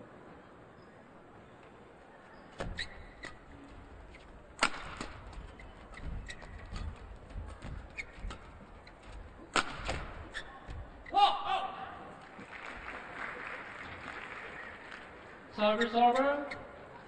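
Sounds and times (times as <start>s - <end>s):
rackets hitting shuttlecock: 4.6s - 11.1s.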